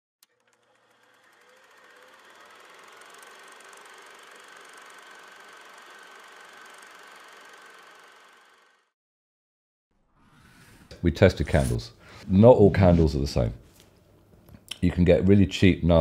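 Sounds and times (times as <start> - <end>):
film projector whirring: 0.2 - 8.9.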